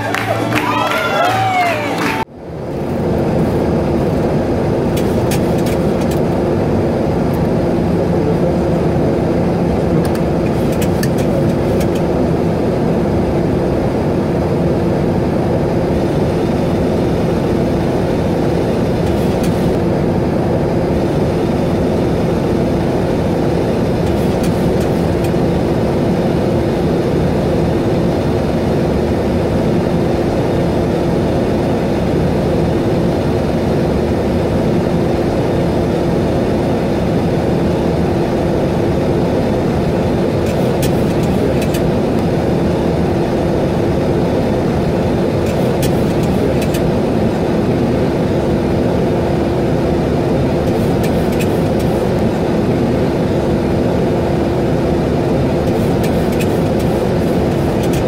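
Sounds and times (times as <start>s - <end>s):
engine drone: 0.0s - 58.0s.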